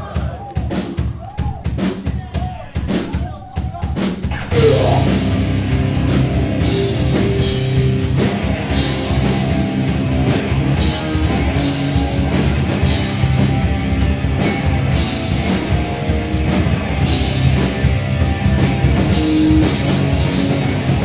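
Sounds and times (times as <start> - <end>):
distorted electric guitars: 4.3 - 21.0.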